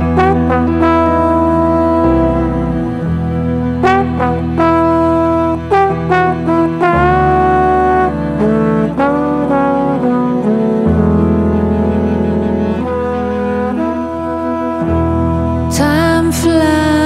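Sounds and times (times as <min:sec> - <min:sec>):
slow trombone melody: 0:00.0 - 0:17.0
sustained low notes: 0:00.0 - 0:17.0.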